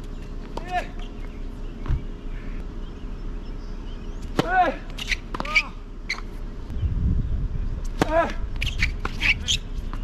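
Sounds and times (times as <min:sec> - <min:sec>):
tennis racket hitting ball: 0:04.3 - 0:05.7, 0:07.9 - 0:09.4.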